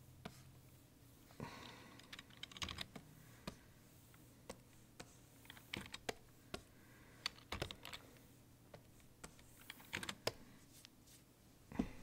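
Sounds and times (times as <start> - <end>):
computer keys clicking: 2.0 - 3.1, 5.4 - 6.2, 7.2 - 8.0, 9.3 - 10.4.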